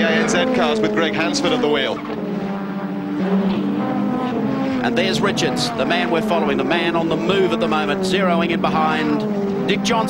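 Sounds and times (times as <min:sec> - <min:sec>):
racing car engines at high revs: 0:00.0 - 0:10.0.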